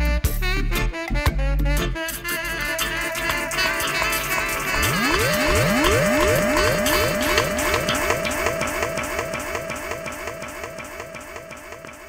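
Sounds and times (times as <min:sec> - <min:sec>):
dub reggae music: 0:00.0 - 0:12.0
sweeping electronic echo effect: 0:03.5 - 0:12.0.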